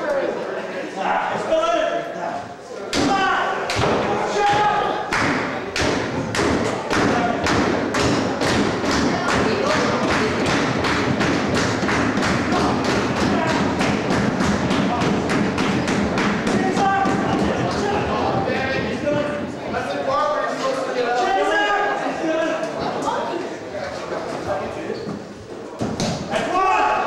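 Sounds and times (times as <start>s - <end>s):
crowd clapping and stomping: 3.7s - 19.5s.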